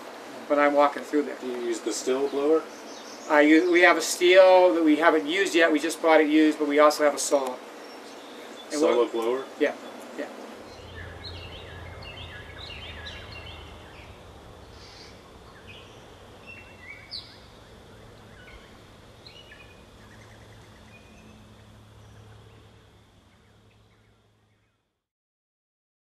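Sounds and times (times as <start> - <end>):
birds chirping: 0.6 - 24.9
low steady hum: 7.4 - 25.0.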